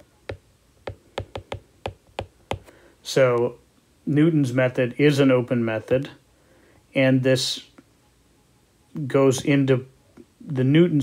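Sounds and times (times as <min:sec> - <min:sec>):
stylus tapping on glass screen: 0:00.0 - 0:02.7.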